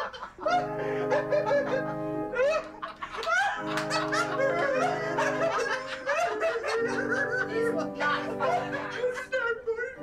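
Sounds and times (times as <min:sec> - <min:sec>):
background music with held notes: 0:00.0 - 0:10.0
people laughing hard: 0:00.0 - 0:10.0.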